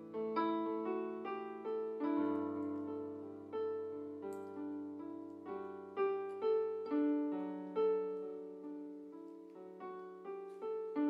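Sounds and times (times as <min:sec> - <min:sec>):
electronic keyboard piano notes: 0:00.0 - 0:11.0.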